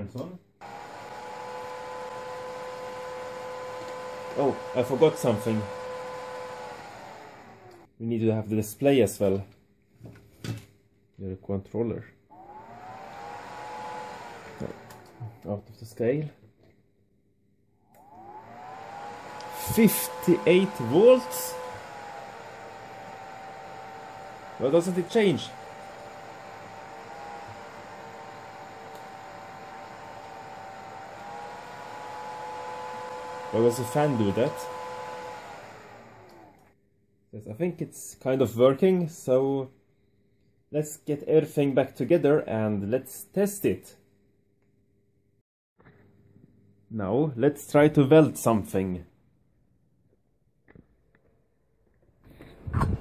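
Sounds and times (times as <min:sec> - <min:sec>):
cooling fan whirring: 0:00.6 - 0:07.9, 0:12.3 - 0:15.5, 0:18.0 - 0:36.6.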